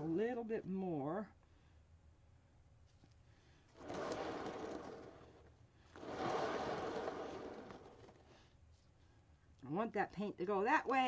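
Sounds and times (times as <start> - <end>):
turntable whirring: 5.9 - 8.3.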